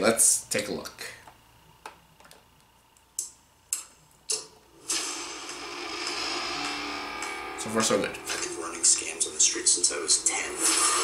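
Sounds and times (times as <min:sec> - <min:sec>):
sustained musical drone: 0:04.9 - 0:11.0.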